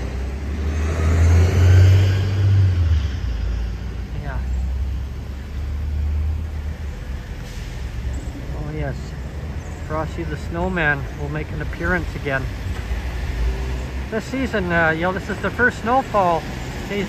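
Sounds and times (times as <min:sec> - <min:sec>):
street traffic rumbling: 0:00.0 - 0:17.0.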